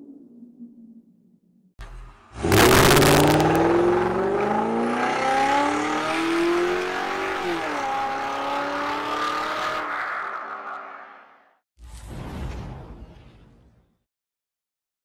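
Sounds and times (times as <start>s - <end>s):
car engine revving: 1.8s - 9.9s.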